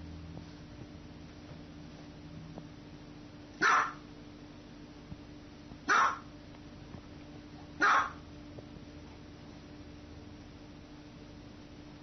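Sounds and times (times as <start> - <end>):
small dog barking: 3.6 - 4.1, 5.9 - 6.3, 7.8 - 8.3.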